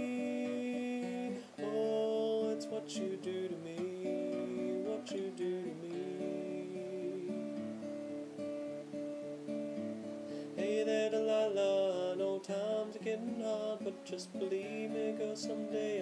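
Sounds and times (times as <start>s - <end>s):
man singing: 0.0s - 8.2s, 10.5s - 16.0s
acoustic guitar chords: 0.0s - 16.0s.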